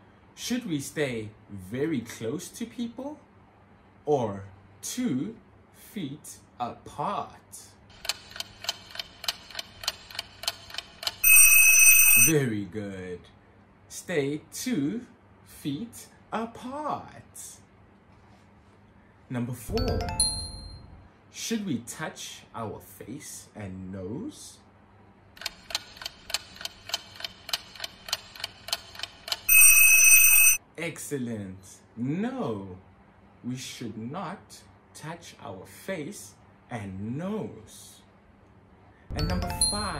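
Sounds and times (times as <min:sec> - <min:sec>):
clock ticking: 0:07.9 - 0:12.3, 0:25.4 - 0:30.6.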